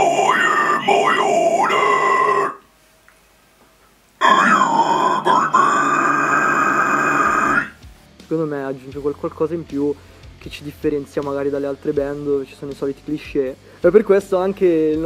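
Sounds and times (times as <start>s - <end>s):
man growling death metal vocals: 0.0s - 2.6s, 4.2s - 7.8s.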